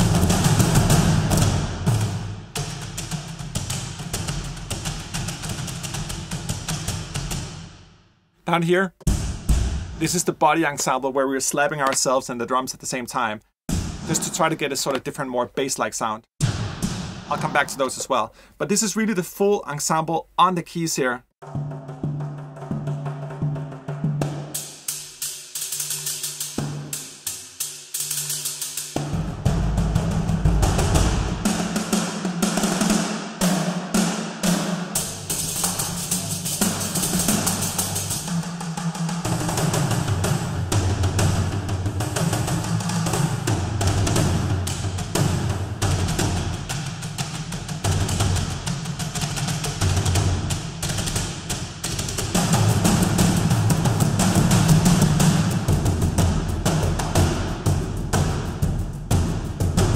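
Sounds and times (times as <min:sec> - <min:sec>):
frame drums playing: 0:00.0 - 0:07.6, 0:13.7 - 0:15.1, 0:16.4 - 0:18.2, 0:21.4 - 0:59.9
deep low drums: 0:08.9 - 0:10.2, 0:13.7 - 0:14.7, 0:16.4 - 0:18.0, 0:29.0 - 0:31.8, 0:35.0 - 0:59.9.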